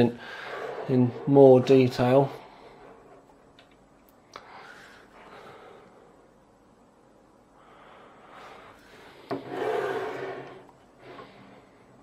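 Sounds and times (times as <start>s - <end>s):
board scraping across wooden desk: 9.3s - 11.4s.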